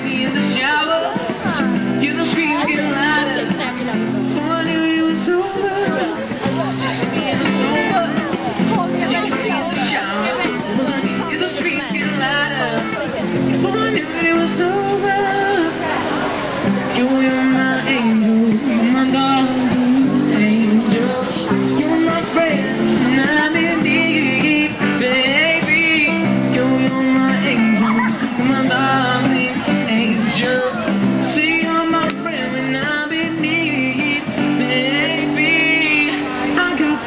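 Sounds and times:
acoustic guitar strumming: 0.0 - 37.0
man singing into a microphone: 0.0 - 37.0.

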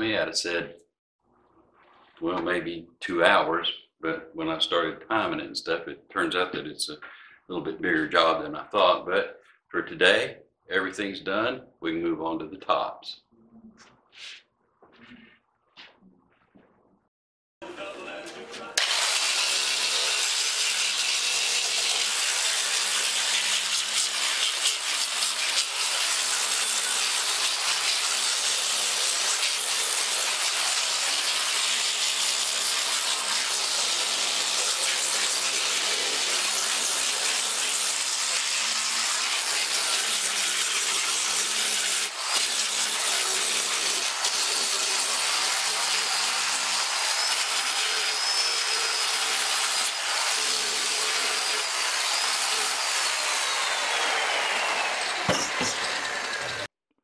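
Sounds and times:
disc sander grinding wood: 18.8 - 56.7.

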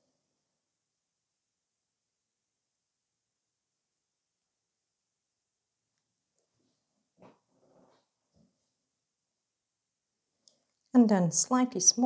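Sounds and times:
woman speaking: 11.0 - 12.0.

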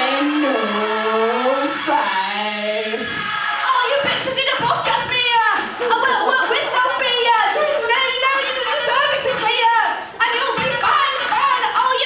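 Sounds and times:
rough noisy sound: 0.0 - 5.2.

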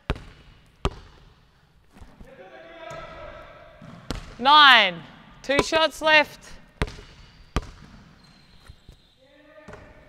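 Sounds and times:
basketball bouncing on wood floor: 0.0 - 1.3, 3.8 - 4.4, 5.5 - 5.9, 6.8 - 8.2.

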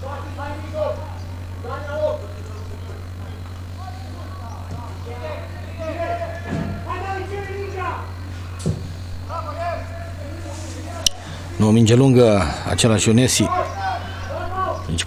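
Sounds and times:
low electrical hum: 0.0 - 15.0
voices calling and shouting: 0.0 - 15.0.

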